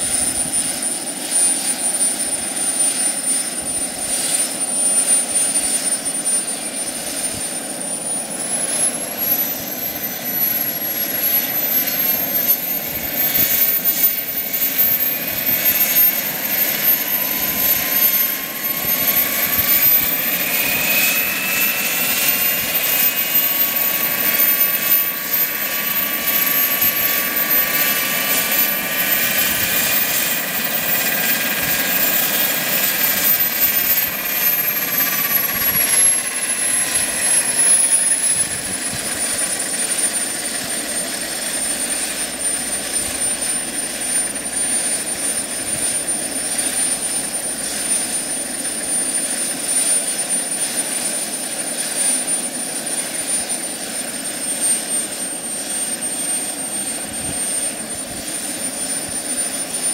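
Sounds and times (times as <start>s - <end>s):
gas turbine high whine: 0.0s - 59.9s.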